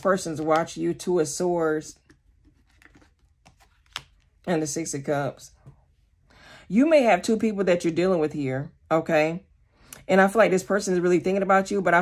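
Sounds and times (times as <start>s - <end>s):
cards rustling and tapping: 2.0s - 4.5s.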